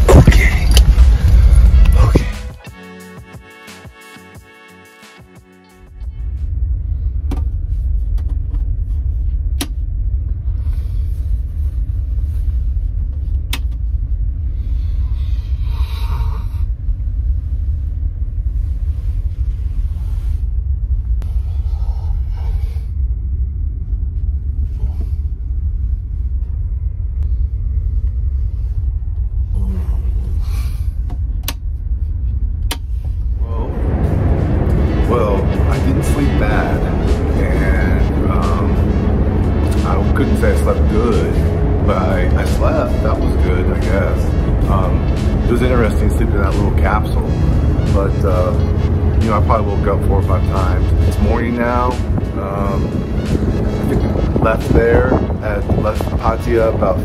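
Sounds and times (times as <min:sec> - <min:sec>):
ship engines rumbling: 0:32.4 - 0:57.0.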